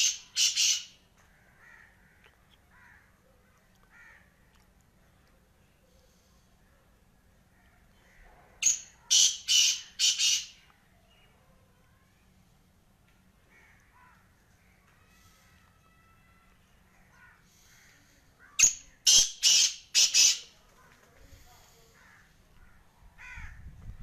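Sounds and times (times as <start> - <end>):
bird harsh rasping call: 0.0 - 3.1, 8.1 - 10.6, 17.0 - 20.6.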